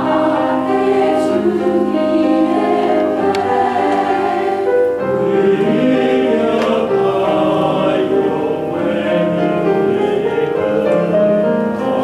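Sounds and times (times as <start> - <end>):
church choir singing a hymn: 0.0 - 12.0
piano accompaniment: 0.0 - 12.0.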